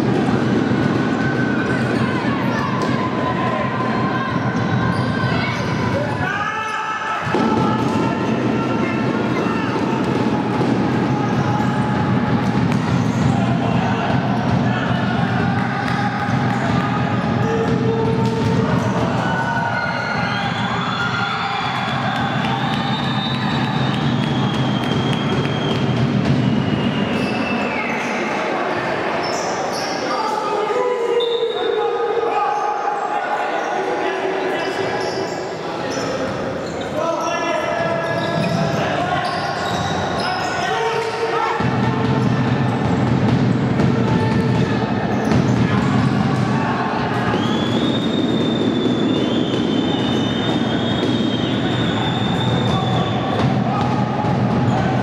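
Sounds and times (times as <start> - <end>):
players shouting: 0.0 - 55.0.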